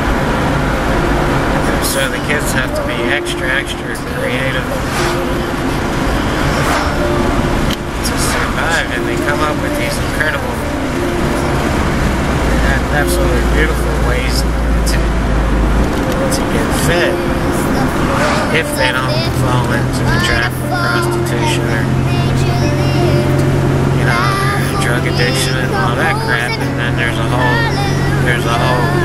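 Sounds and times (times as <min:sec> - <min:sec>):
car road and engine rumble: 0:00.0 - 0:29.0
man talking: 0:01.6 - 0:05.5, 0:08.0 - 0:11.6, 0:12.4 - 0:15.2, 0:16.1 - 0:23.4, 0:24.0 - 0:29.0.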